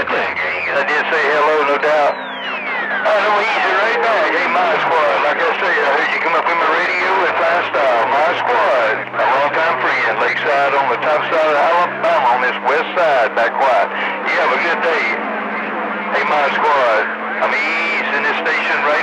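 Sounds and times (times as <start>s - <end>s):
men's voices through radio: 0.0s - 19.0s.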